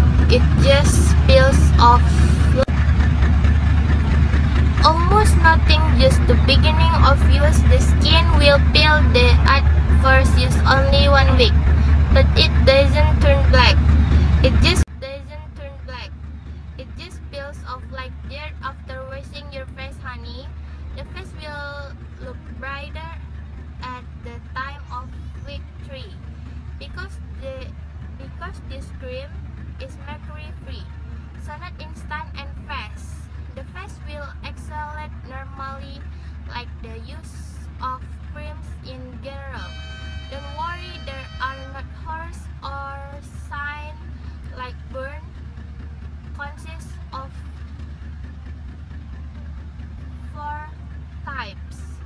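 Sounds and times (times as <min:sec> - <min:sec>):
steady low rumble: 0:00.0 - 0:52.0
young woman speaking: 0:00.2 - 0:02.7, 0:04.6 - 0:16.1, 0:16.8 - 0:23.2, 0:23.8 - 0:26.2, 0:26.8 - 0:45.3, 0:46.4 - 0:47.4, 0:50.2 - 0:52.0.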